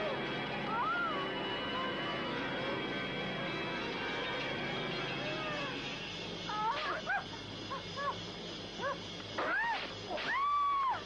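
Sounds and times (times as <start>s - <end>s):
background music: 0.0s - 11.0s
high-pitched yelps: 6.5s - 8.2s.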